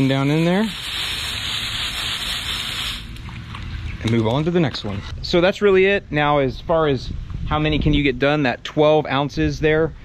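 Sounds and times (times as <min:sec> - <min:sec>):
hose nozzle spraying water: 0:00.0 - 0:03.4.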